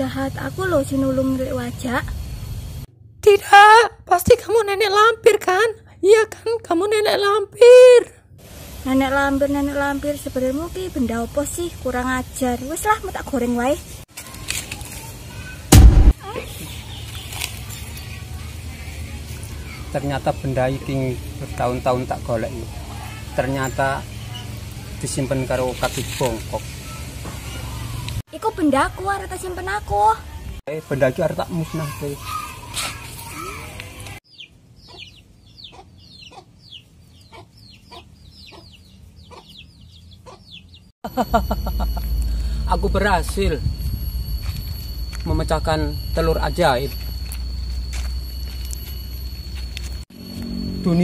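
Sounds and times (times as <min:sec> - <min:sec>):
loud brief burst of noise: 0:15.7 - 0:16.2
chickens clucking: 0:34.4 - 0:40.8.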